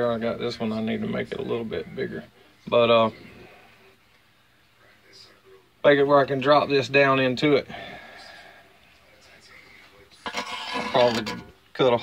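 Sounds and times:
man speaking: 10.6s - 12.0s.

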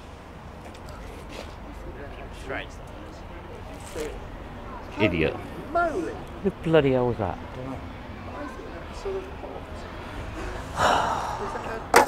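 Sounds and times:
man's sharp breath: 10.3s - 11.6s.

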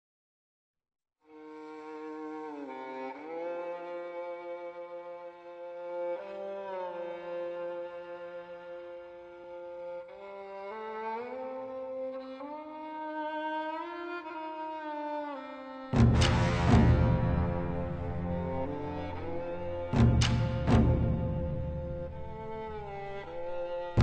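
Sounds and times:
slow orchestral string music: 1.3s - 24.0s.

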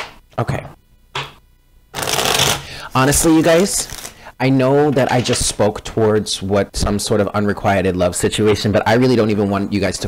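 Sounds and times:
cards being shuffled: 2.0s - 4.2s.

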